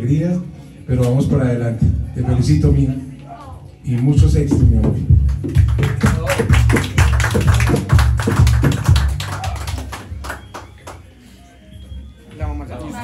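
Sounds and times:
deep bass notes: 4.2 - 9.2.

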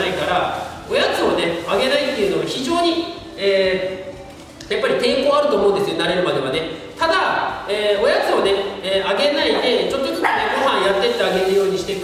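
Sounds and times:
man talking: 0.0 - 12.0.

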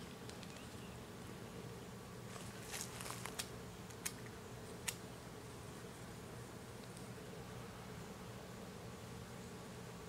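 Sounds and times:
faint low buzzing hum: 0.0 - 10.0.

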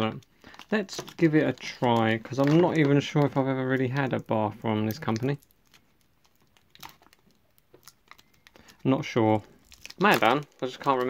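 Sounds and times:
wrapper crinkling: 0.0 - 11.0.

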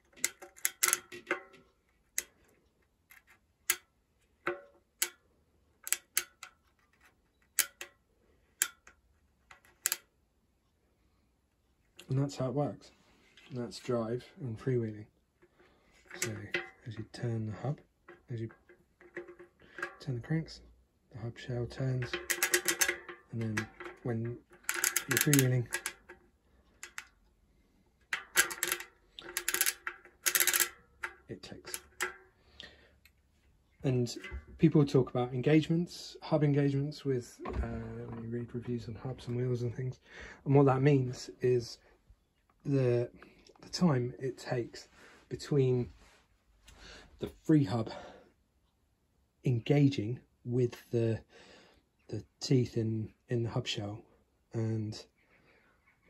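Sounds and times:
bicycle hub pawls clicking: 0.0 - 1.6, 22.0 - 27.2, 28.2 - 32.4.

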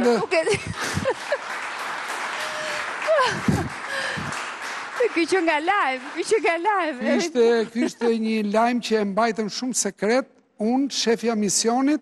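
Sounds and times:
studio audience applauding: 0.0 - 7.6.

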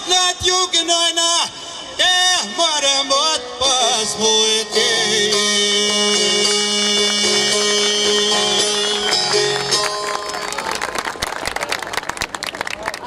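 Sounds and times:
audience applauding: 7.0 - 13.0.

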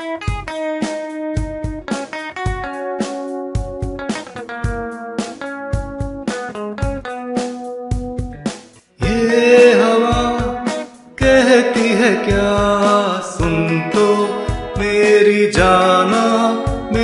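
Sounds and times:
electric guitar melody: 0.0 - 17.0
steady drum beat: 0.0 - 17.0.

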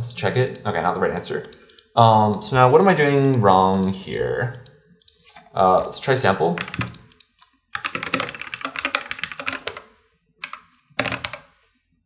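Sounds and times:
typing on computer keyboard: 3.2 - 5.2, 5.8 - 11.6.

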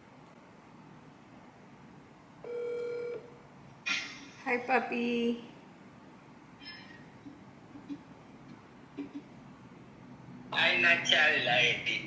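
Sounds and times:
phone ringing tone: 2.4 - 3.3.

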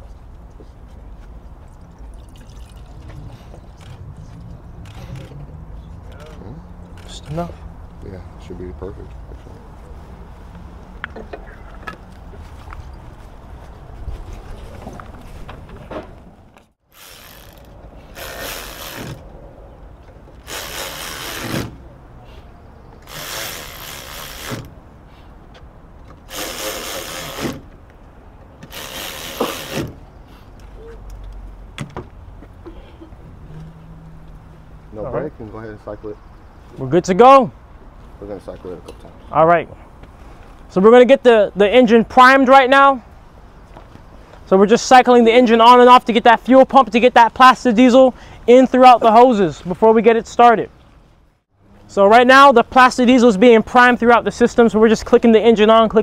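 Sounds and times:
electric ratchet whirring: 16.9 - 19.3, 20.4 - 21.7, 23.0 - 24.7, 26.3 - 27.6, 28.6 - 30.0.

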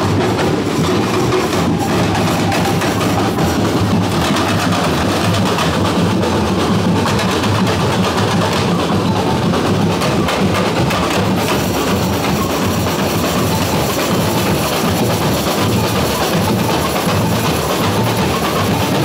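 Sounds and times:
marching drums beating: 0.0 - 19.0.

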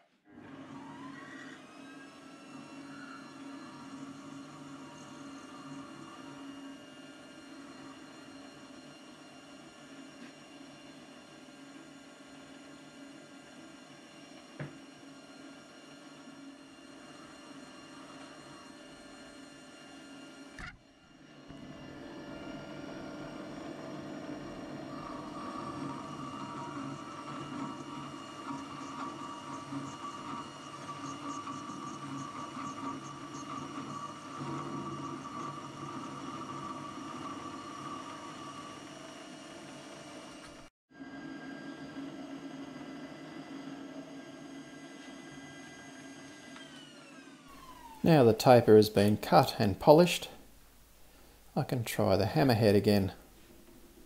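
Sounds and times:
lathe motor and gear whine: 0.0 - 50.5.

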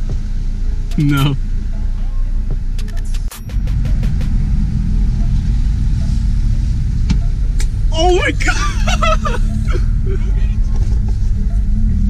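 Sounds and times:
car engine rumble: 0.0 - 12.0.

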